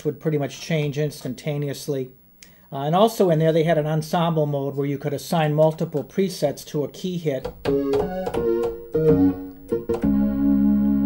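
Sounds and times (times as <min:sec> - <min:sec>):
synthesizer notes and chords: 0:07.6 - 0:11.0.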